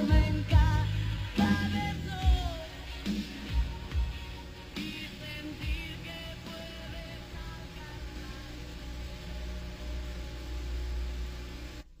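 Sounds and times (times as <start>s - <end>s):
ballad music: 0.0s - 10.2s
video transfer hum and hiss: 0.0s - 12.0s.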